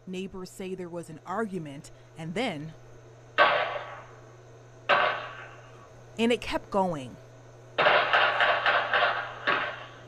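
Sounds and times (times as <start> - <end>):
gunshots with echo: 3.4 - 4.0, 4.9 - 5.6, 7.8 - 10.0.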